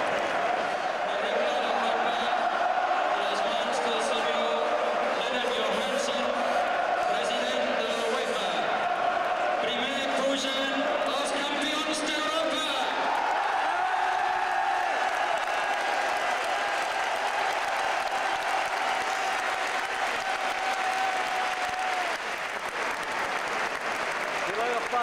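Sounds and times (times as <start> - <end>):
crowd shouting and chanting: 0.0 - 19.4
stadium crowd roar: 0.0 - 25.0.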